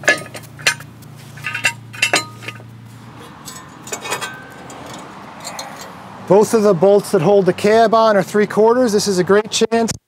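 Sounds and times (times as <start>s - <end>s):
low steady hum: 0.0s - 5.9s
metallic clinks of steel hardware: 3.4s - 5.9s.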